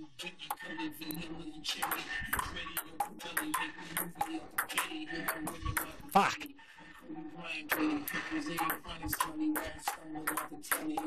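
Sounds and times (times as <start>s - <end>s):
faint background music: 0.0s - 11.0s
ping pong ball clicks: 8.6s - 11.0s.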